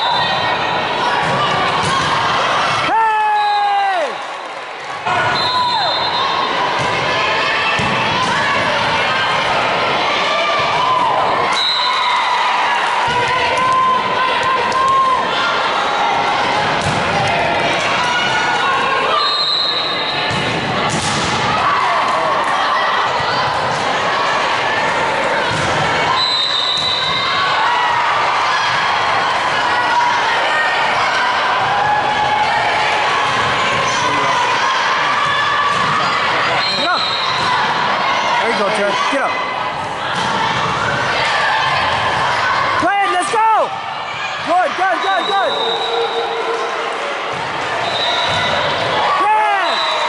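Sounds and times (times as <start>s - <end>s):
spectators chatting: 0.0s - 50.0s
spectators cheering: 0.0s - 50.0s.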